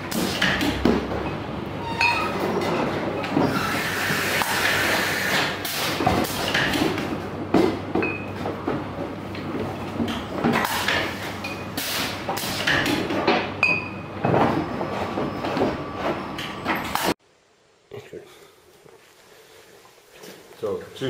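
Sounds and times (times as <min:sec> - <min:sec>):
glass bottles clinking: 0:02.0 - 0:02.4, 0:08.0 - 0:08.3.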